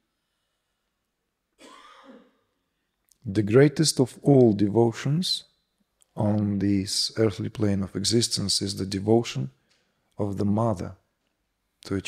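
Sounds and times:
man clearing throat: 1.6s - 2.4s.

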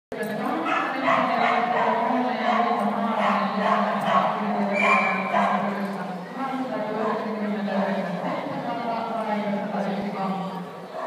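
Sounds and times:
people talking: 0.1s - 11.0s
dog barking: 0.6s - 5.7s.

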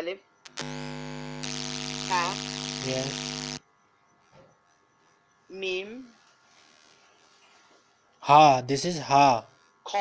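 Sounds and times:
loud electronic buzz with hum: 0.3s - 10.0s
speech: 8.2s - 10.0s.

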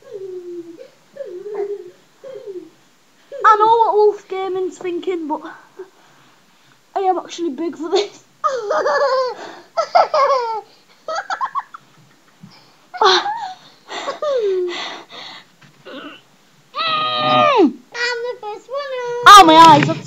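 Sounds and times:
boy laughing and giggling: 7.9s - 14.7s
boy crying out: 16.8s - 17.7s.

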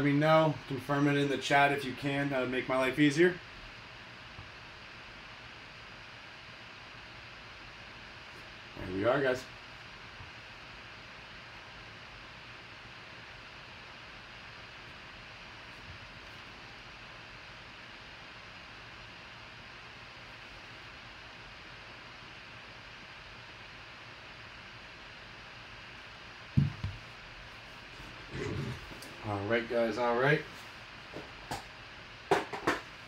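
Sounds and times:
faint electrical hum: 0.0s - 33.0s
room hiss: 0.0s - 33.0s
low thump: 26.6s - 27.0s.

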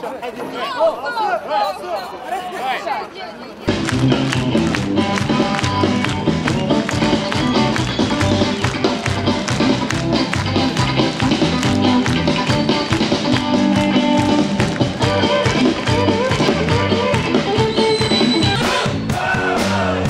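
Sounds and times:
electric guitar: 3.7s - 19.0s
drum kit beat: 3.7s - 20.0s
electric bass: 3.7s - 20.0s.

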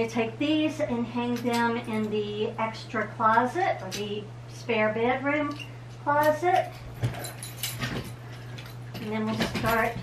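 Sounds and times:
wire hangers clinking: 1.2s - 2.3s, 5.4s - 10.0s.

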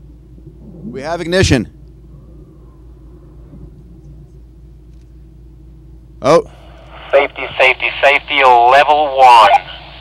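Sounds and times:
distant rocket engine rumble: 0.0s - 10.0s.

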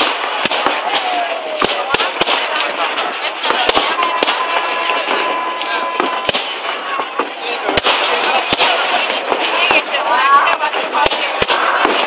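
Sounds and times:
fireworks bursting: 0.0s - 12.0s.

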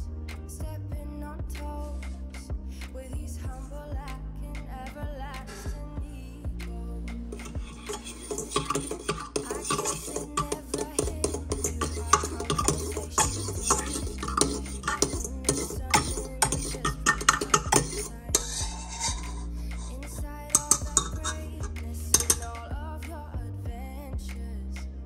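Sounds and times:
background music: 0.0s - 25.0s
whisk scraping metal bowl: 7.3s - 22.7s.

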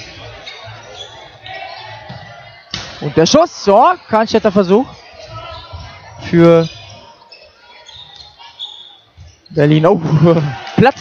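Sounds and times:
murmur of spectators: 0.0s - 11.0s.

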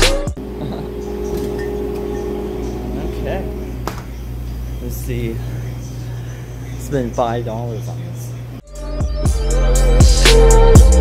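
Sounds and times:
refrigerated coolers humming: 0.0s - 8.7s
backing music: 0.0s - 11.0s
faint held tone: 0.4s - 7.2s.

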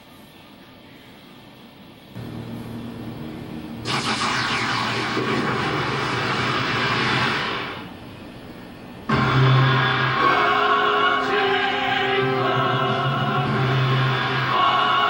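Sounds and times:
low steady drone: 2.2s - 15.0s.

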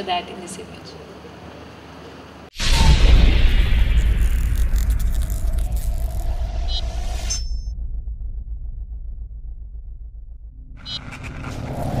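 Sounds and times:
deep pulsing rumble: 2.6s - 12.0s
whoosh: 2.6s - 12.0s.

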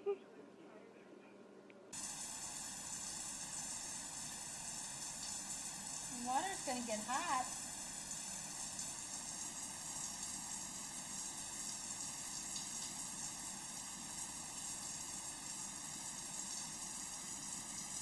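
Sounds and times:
shower spray running: 2.0s - 18.0s.

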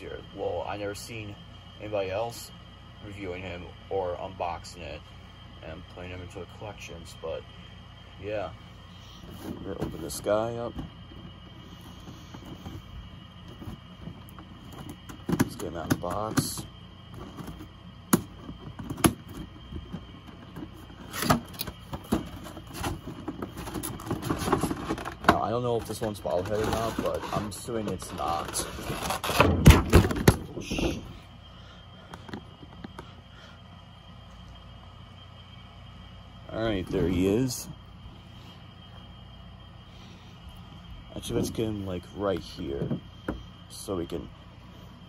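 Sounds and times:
high whine: 0.0s - 45.0s
room noise: 0.0s - 45.0s.

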